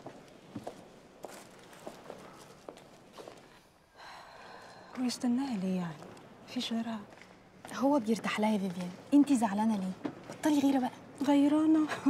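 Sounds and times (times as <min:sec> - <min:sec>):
faint footsteps: 0:00.0 - 0:03.7, 0:04.5 - 0:09.2.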